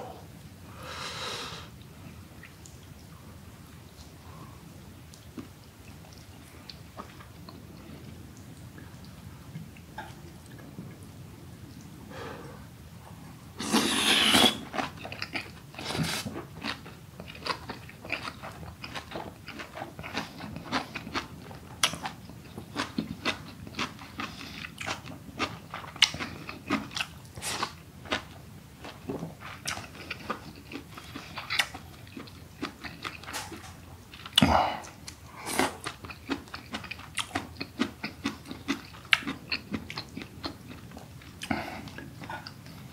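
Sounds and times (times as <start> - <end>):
wet crunchy chewing: 13.6 - 34.4, 35.5 - 42.8.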